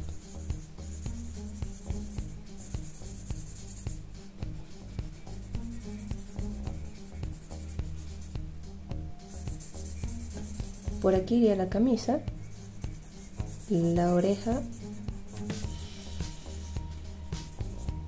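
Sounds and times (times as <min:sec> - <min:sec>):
soft music: 0:00.0 - 0:18.0
blending stump rubbing on paper: 0:09.3 - 0:11.1, 0:12.4 - 0:16.8.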